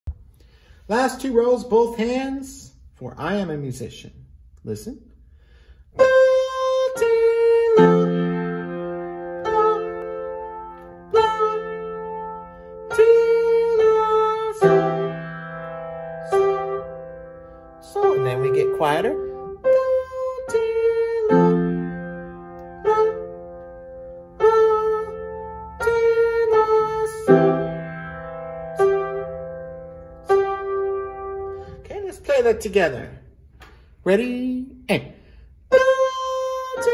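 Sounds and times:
slow piano notes and chords: 6.0 - 31.8.

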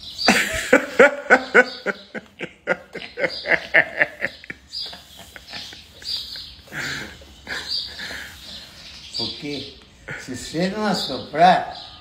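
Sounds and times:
stifled breathy laughter: 0.3 - 8.7.

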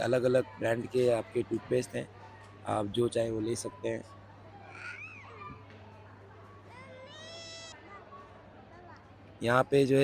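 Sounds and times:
faint murmur of shoppers: 0.0 - 10.0
child squealing: 4.7 - 5.6, 6.8 - 7.8.

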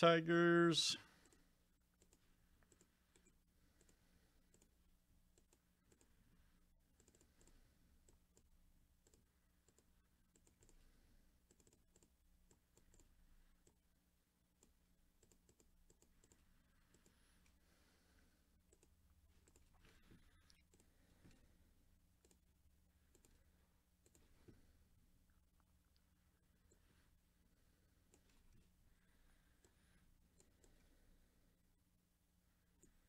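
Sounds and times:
faint steady hum: 0.0 - 33.0
computer mouse and keyboard clicks: 2.0 - 6.2, 6.9 - 13.8, 14.6 - 17.5, 18.7 - 21.4, 22.2 - 23.4, 24.0 - 24.4, 30.4 - 30.9.

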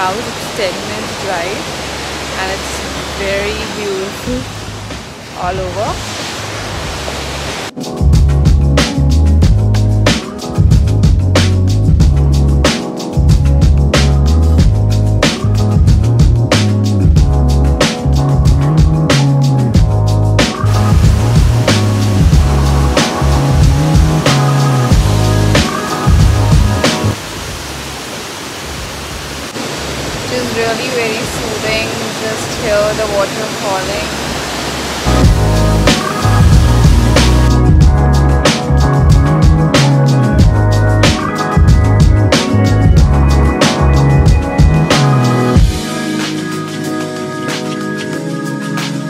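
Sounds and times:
waterfall rushing: 0.0 - 7.8, 20.5 - 37.8
person speaking: 2.4 - 4.5, 5.3 - 6.0, 30.3 - 34.2
music with heavy beat: 7.8 - 27.2, 35.1 - 49.0.

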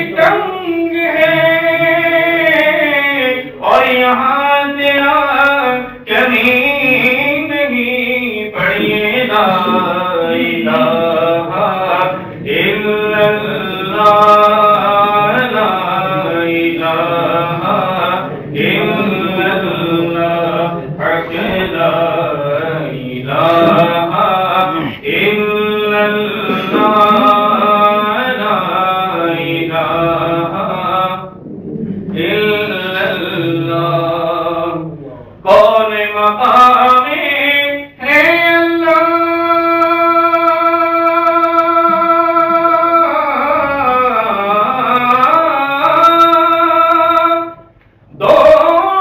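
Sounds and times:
man singing into a microphone: 0.0 - 31.4, 32.0 - 49.0
man chanting a devotional song: 0.0 - 49.0.

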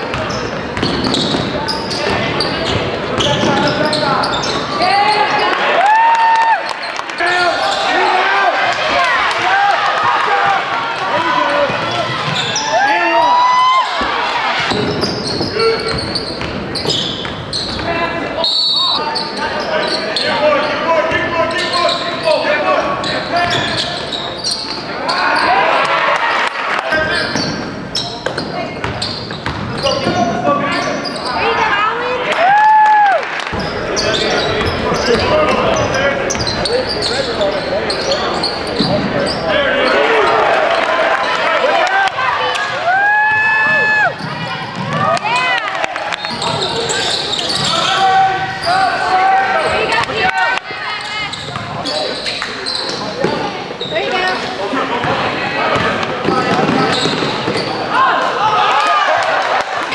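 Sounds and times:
spectators' voices and calls: 0.0 - 59.9
basketball bouncing on hardwood: 0.1 - 1.6.

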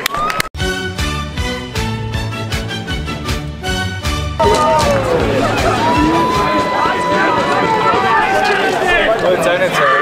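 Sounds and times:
people shouting and cheering: 4.4 - 10.0.

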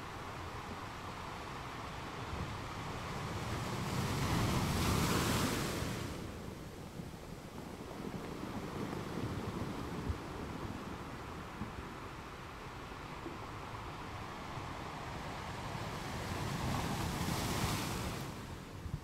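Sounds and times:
wind gust on microphone: 0.0 - 19.0.

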